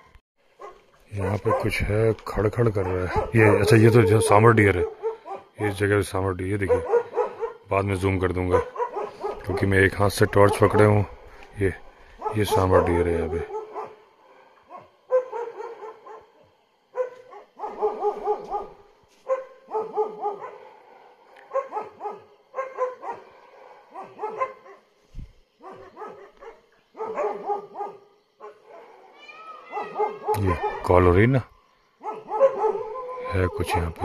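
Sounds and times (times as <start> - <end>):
dog barking: 0.6 - 1.9, 2.6 - 5.6, 6.6 - 7.7, 8.4 - 11.4, 12.1 - 24.9, 25.6 - 31.0, 32.0 - 34.0.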